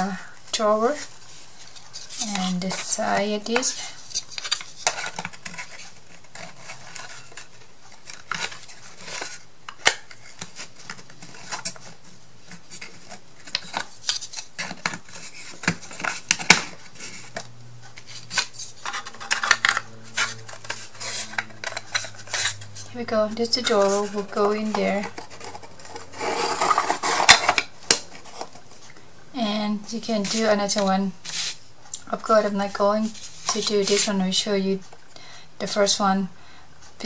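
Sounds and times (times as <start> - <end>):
wooden pieces clicking and scraping: 12.5 - 22.9.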